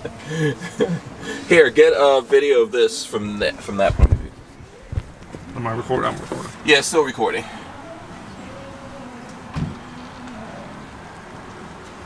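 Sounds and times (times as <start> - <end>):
traffic hum: 0.0 - 12.0
faint engine tone: 4.4 - 12.0.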